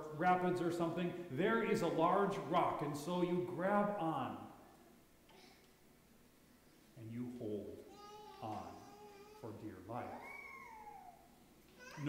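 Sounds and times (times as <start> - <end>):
small child crying: 7.9 - 9.5, 10.2 - 12.0.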